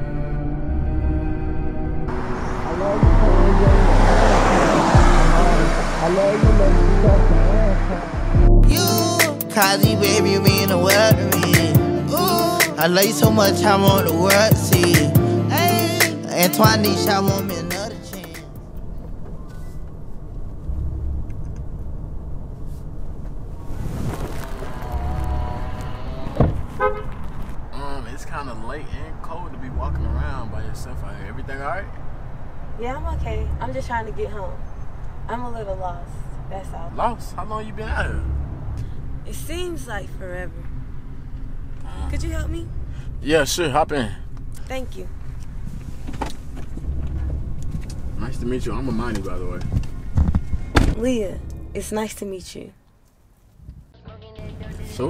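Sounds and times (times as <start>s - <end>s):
car engine and tyres rumbling: 0.0s - 55.0s
dull low thump: 26.3s - 27.4s, 49.6s - 51.8s
sharp thump: 26.4s - 26.7s, 50.1s - 51.0s.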